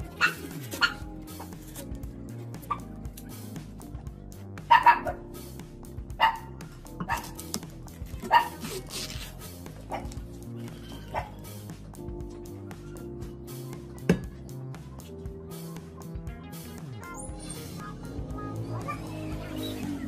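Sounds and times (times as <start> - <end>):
dog barking: 0.0 - 1.5, 2.6 - 2.9, 4.7 - 5.3, 6.2 - 7.4, 8.2 - 8.9, 9.8 - 10.2, 10.8 - 11.5
background music: 0.0 - 20.0.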